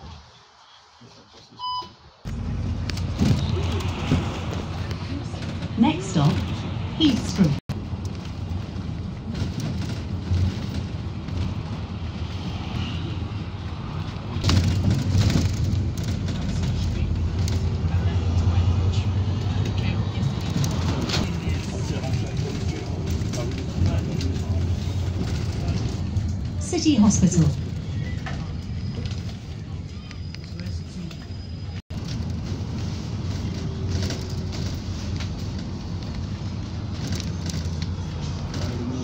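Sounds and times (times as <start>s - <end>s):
road rumble: 0.0s - 39.0s
bus engine running: 2.3s - 39.0s.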